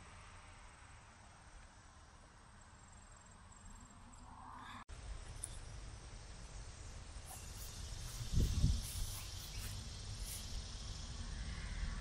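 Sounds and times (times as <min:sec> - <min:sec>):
insects chirping in grass: 0:05.0 - 0:12.0.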